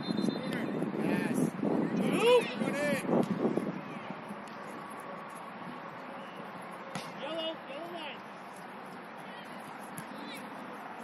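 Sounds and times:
open-air background noise: 0.0s - 11.0s.

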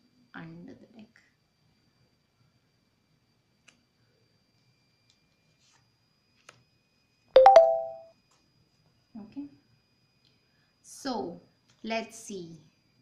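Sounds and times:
short struck chime: 7.4s - 8.0s.

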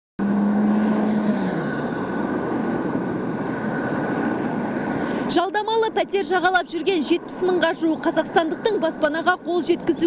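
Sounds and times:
low engine tone: 0.2s - 5.3s
passing vehicles rushing: 0.2s - 10.0s.

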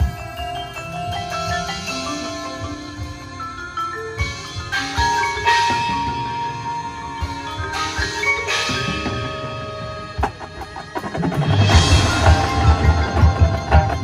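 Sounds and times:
mallet percussion ringing chords: 0.0s - 14.0s
marching band low pulsing beat: 8.9s - 14.0s.

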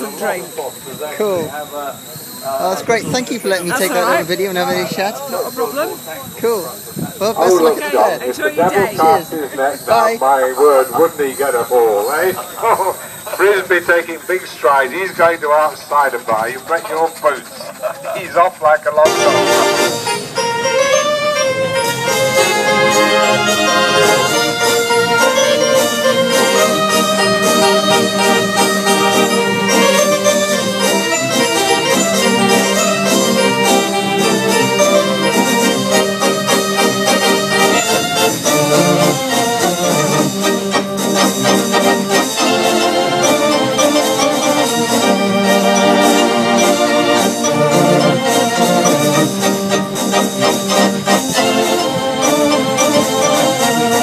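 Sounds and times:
electronic organ playing: 0.0s - 54.0s.

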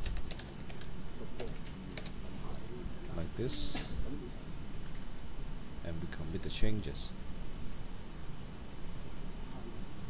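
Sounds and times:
typing on computer keyboard: 0.0s - 2.1s.

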